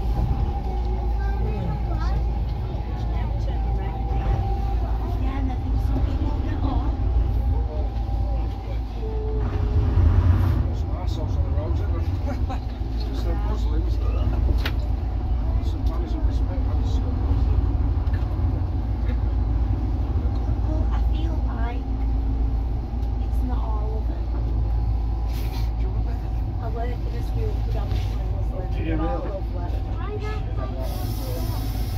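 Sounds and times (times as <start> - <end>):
bus diesel engine rumbling: 0.0 - 31.9
passengers chattering: 0.0 - 31.9.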